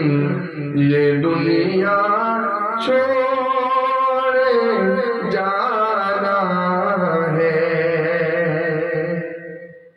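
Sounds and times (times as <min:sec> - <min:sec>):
man singing a devotional hymn: 0:00.0 - 0:09.6.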